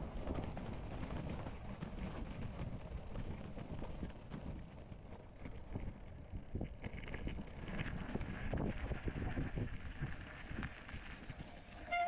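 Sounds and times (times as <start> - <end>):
bike clicks and rattles: 0.0 - 11.9
bike tyres rolling over gravel: 0.0 - 12.0
wind on microphone: 8.1 - 10.7.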